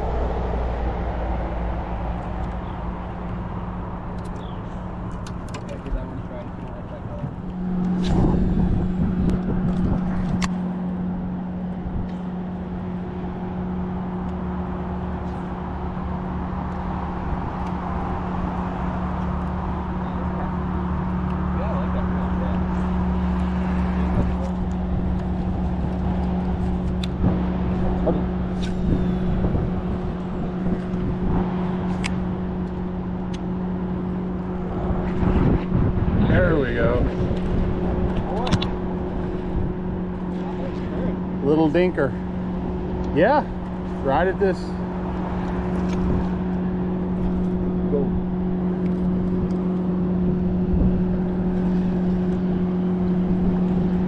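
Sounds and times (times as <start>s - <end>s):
boat motor humming: 0.0s - 54.0s
water noise: 0.0s - 54.0s
wind noise: 5.3s - 12.4s, 22.9s - 33.0s, 33.8s - 41.4s, 44.9s - 54.0s.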